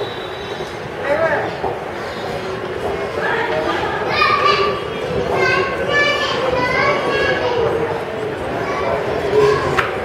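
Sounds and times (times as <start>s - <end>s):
children calling out and chattering: 0.0s - 10.0s.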